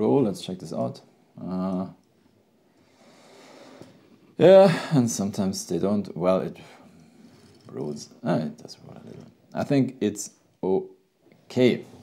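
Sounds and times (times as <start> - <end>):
toy car rolling on mat: 6.9 - 9.4.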